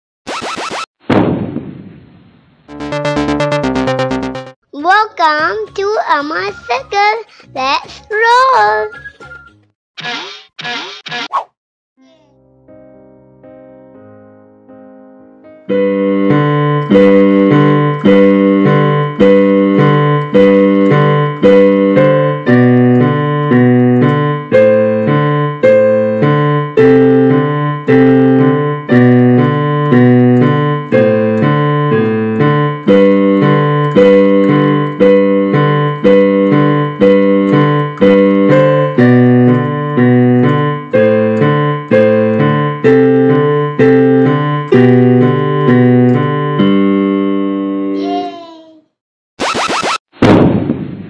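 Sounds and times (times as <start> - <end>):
digital piano playing: 2.7 - 4.6, 12.6 - 48.1.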